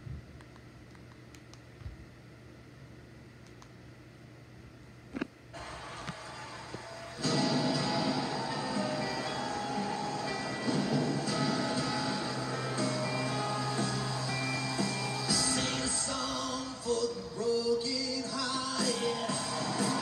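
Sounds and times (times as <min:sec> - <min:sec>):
faint clicks: 0:03.4 - 0:03.8
television show music: 0:05.6 - 0:20.0.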